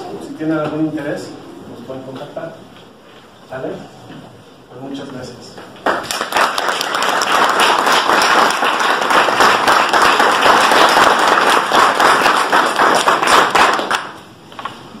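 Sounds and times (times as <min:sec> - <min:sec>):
audience applauding: 0:05.8 - 0:14.2.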